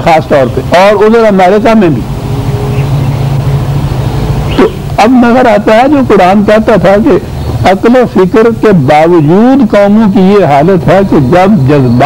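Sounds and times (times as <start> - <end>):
even hiss: 0.0 - 12.0
low hum: 0.0 - 12.0.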